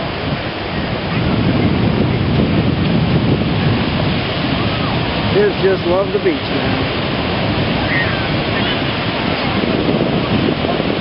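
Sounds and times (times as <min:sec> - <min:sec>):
ocean surf breaking: 0:00.0 - 0:11.0
wind buffeting microphone: 0:00.0 - 0:11.0.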